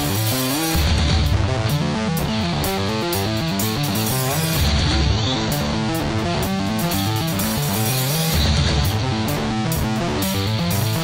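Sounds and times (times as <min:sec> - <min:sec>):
bass guitar line: 0:00.0 - 0:11.0
drum beat with cymbals: 0:00.0 - 0:11.0
electric guitar riff: 0:00.0 - 0:11.0.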